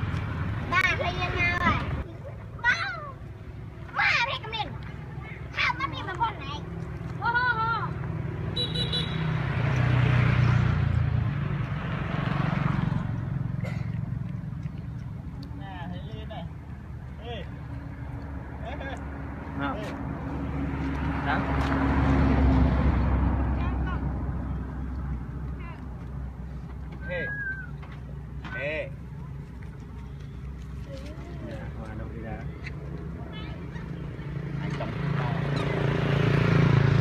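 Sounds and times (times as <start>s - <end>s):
vehicles passing: 0.0s - 37.0s.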